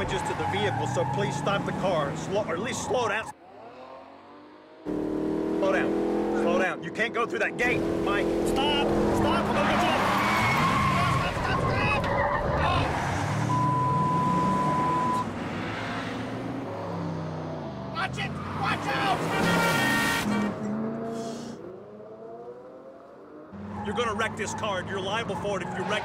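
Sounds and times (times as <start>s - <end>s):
tyres squealing: 0.0s - 3.4s, 8.4s - 15.3s
car engine revving: 0.0s - 26.0s.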